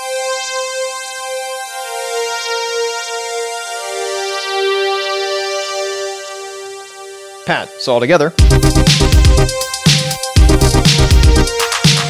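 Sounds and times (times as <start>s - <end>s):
synthesizer pad chords: 0.0s - 12.0s.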